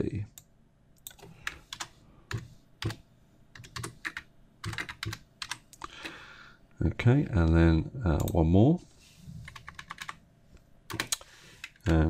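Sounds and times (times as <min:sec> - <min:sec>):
typing on computer keyboard: 0:01.0 - 0:03.0, 0:03.6 - 0:05.9, 0:09.5 - 0:10.2, 0:10.9 - 0:12.0.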